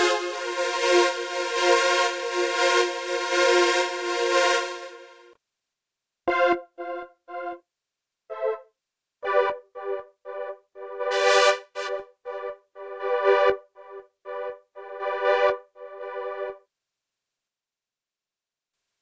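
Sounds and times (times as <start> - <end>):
synthesizer short keyboard notes: 9.2 - 16.6.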